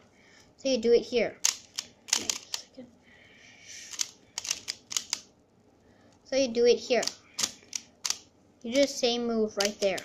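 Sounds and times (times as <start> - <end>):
sharp plastic clicks: 1.4 - 2.7, 3.9 - 5.3, 7.0 - 8.9, 9.6 - 10.0
puzzle pieces sliding: 3.8 - 5.2.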